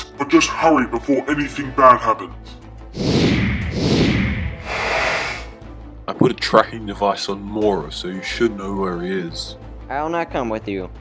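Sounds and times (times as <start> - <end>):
background music: 0.0 - 11.0
rushing noise effect: 3.0 - 5.5.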